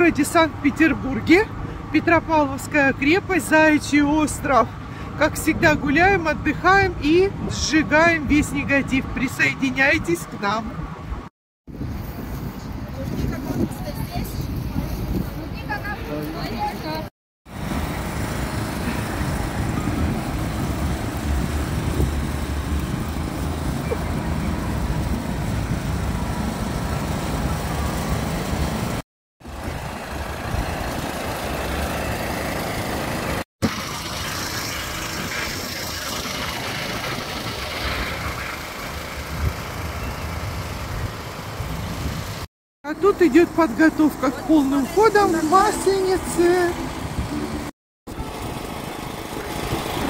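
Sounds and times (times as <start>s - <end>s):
generator running with low rumble: 17.6s - 42.4s, 46.8s - 50.0s.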